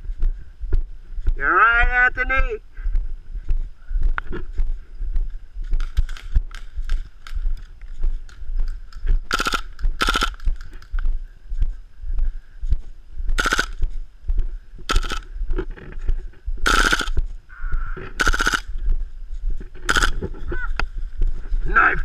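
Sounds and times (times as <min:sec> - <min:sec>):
soft walking footsteps: 0:00.0 - 0:01.4, 0:02.4 - 0:22.0
airsoft gun bursts: 0:09.3 - 0:10.4, 0:13.4 - 0:13.8, 0:14.9 - 0:15.3, 0:16.6 - 0:17.2, 0:18.2 - 0:18.7, 0:19.9 - 0:20.2.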